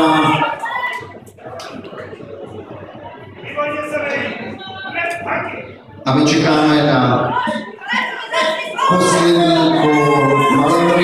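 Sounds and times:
announcer over public address: 0.0 - 11.0
background music: 0.0 - 11.0.

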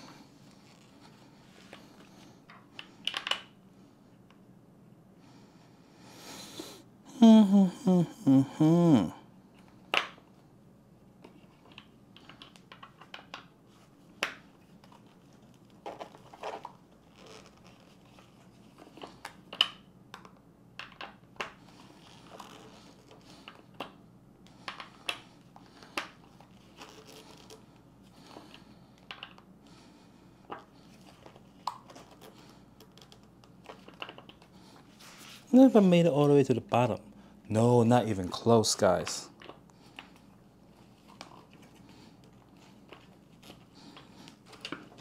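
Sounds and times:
faint steady hum: 0.0 - 45.0.

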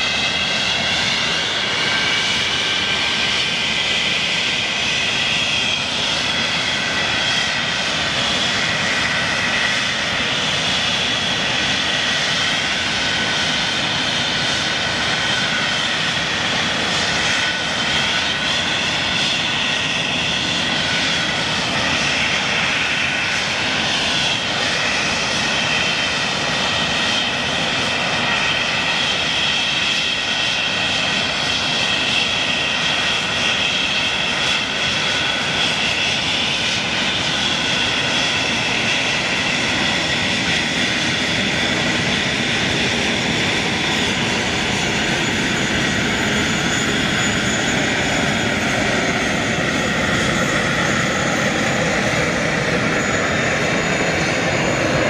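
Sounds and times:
jet engines running: 0.0 - 55.0.

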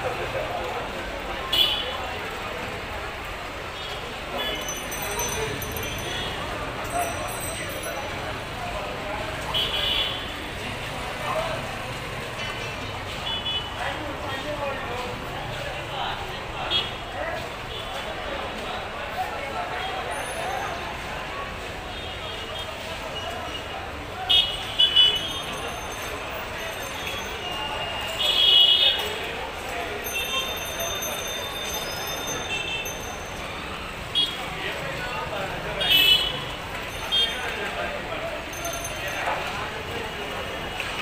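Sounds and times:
crowd noise: 0.0 - 41.0
traffic: 0.0 - 41.0.

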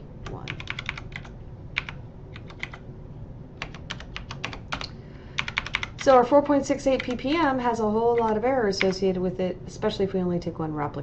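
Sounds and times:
keyboard keys tapped: 0.3 - 2.8, 3.6 - 6.1, 8.1 - 9.0.

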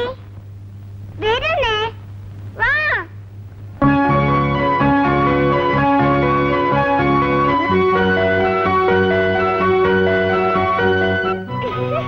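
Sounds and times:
steady low hum: 0.0 - 12.0
sustained keyboard music: 3.8 - 12.0.

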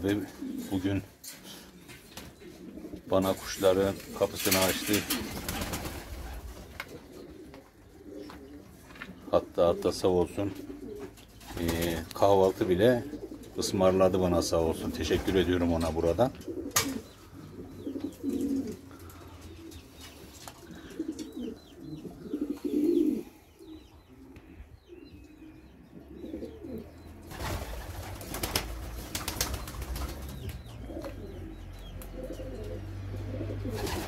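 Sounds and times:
pigeons cooing: 0.0 - 34.0.

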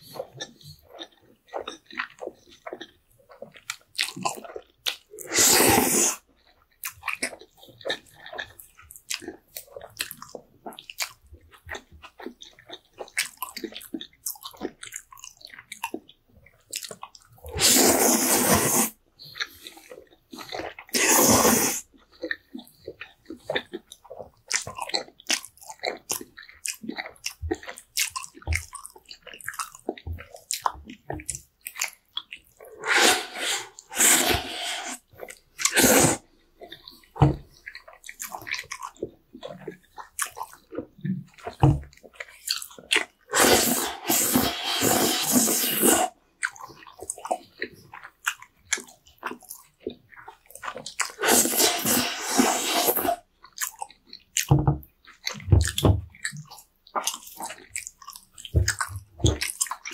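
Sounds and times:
soft wet chewing: 0.0 - 59.9
slurping noodles: 4.0 - 6.3, 16.8 - 22.6, 32.5 - 37.4, 41.4 - 47.4, 50.2 - 53.8
mouth clicks: 31.7 - 39.0.

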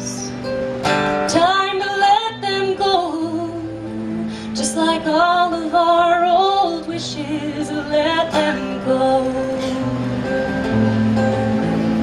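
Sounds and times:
acoustic guitar: 0.0 - 12.0
woman singing: 1.3 - 9.9.

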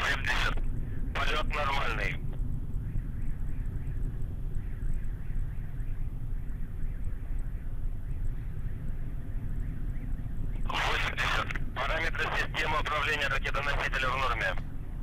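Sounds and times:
hissy radio transmission over loudspeaker: 0.0 - 2.3, 10.5 - 14.8
distant rocket engines rumbling: 0.0 - 15.0.

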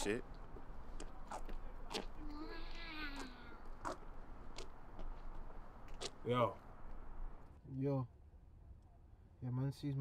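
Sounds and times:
toddler calling: 2.2 - 3.8.

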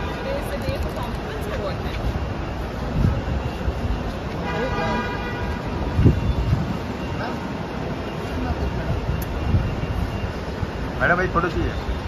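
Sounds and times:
traffic noise: 0.0 - 12.0
voices: 0.0 - 12.0
car horn honk: 4.4 - 5.8.

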